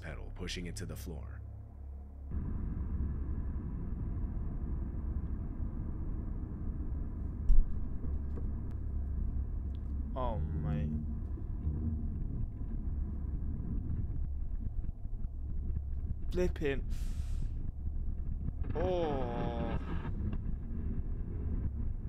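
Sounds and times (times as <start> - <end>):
car engine and road noise: 2.3 - 10.2, 11.0 - 16.1.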